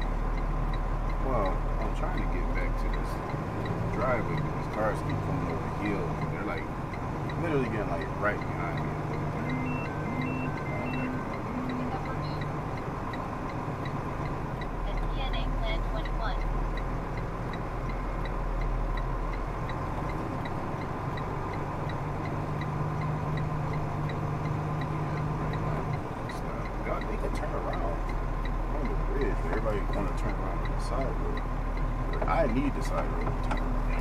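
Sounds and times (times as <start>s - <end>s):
faint fast ticking: 0.0s - 34.0s
road noise: 0.0s - 34.0s
truck diesel engine drone: 0.0s - 34.0s
short beeps: 8.0s - 12.5s.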